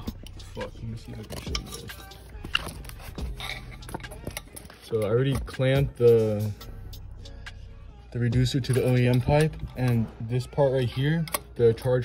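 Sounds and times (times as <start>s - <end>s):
hose clamp clicks and handling: 10.9s - 12.0s.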